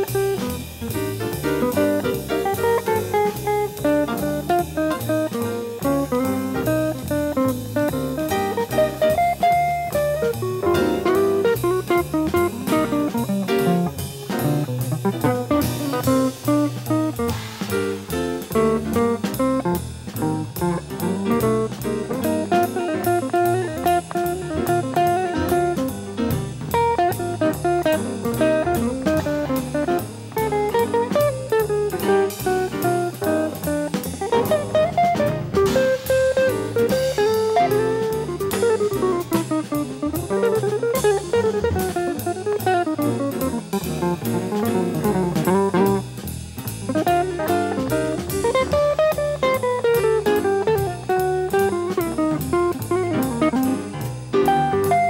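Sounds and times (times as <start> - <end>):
bass: 0.0 - 55.0
drum kit cymbal beat: 0.0 - 55.0
electric guitar: 0.0 - 55.0.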